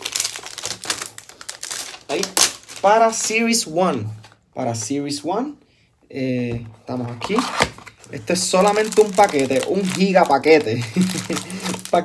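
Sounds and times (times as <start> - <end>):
plastic packaging crinkling: 0.0 - 3.6, 7.2 - 12.0.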